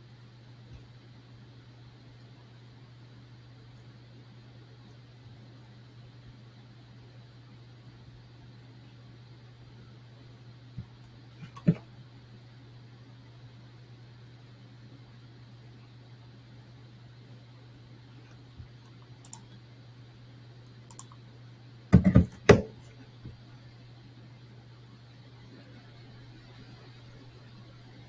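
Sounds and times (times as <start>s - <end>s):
computer mouse clicks: 18.2s - 19.6s, 20.6s - 21.2s
knocks: 21.9s - 22.7s.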